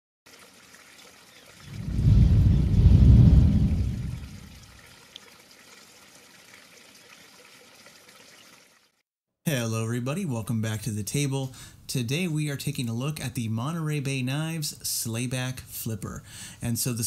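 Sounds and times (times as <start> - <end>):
trickling water: 0.3 - 9.0
deep swell: 1.7 - 4.6.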